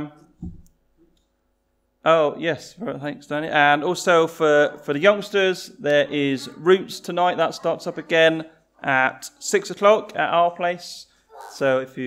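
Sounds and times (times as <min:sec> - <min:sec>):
soft low thump: 0:00.4 - 0:00.7
man saying um: 0:05.8 - 0:10.8, 0:11.4 - 0:12.0.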